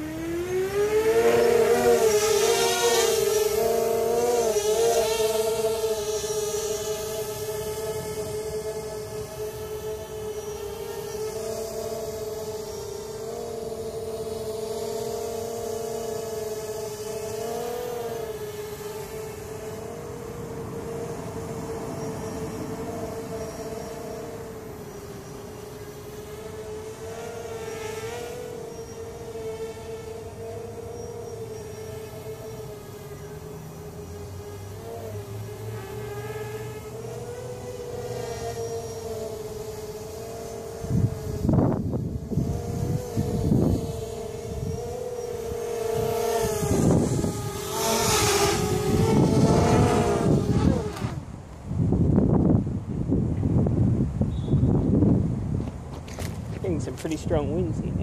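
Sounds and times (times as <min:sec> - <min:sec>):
quadcopter propellers buzzing: 0:00.0 - 0:54.0, 0:54.6 - 0:58.0
wind buffeting microphone: 0:40.8 - 0:44.9, 0:45.9 - 0:58.0.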